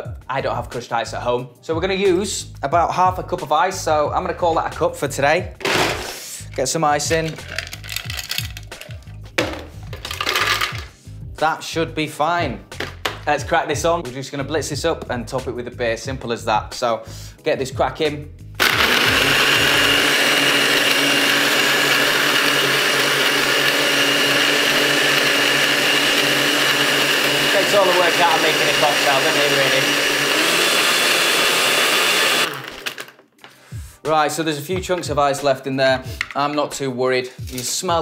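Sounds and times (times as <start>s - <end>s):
background music: 0.0s - 38.0s
blender crushing ice: 7.1s - 10.9s, 18.6s - 33.2s
ice cubes clinking into metal tin: 7.2s - 10.9s.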